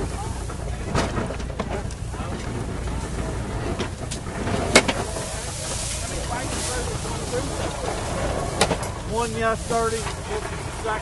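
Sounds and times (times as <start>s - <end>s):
farm machinery and tractor engine: 0.0s - 11.0s.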